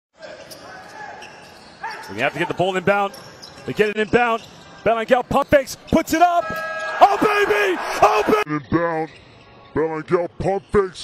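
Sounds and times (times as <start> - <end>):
faint voices echoing: 0.3 - 9.8
commentator speaking: 5.1 - 8.7.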